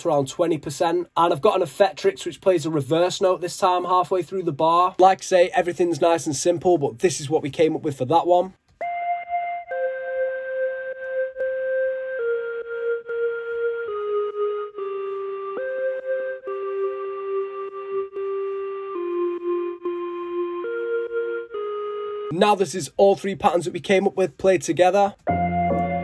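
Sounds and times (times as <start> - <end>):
synth recorder melody with reverb: 8.8 - 22.3, 25.3 - 26.0.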